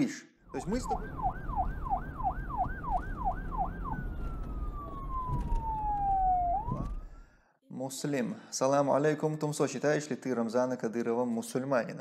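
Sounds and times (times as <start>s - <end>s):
siren wailing: 0.5s - 7.2s.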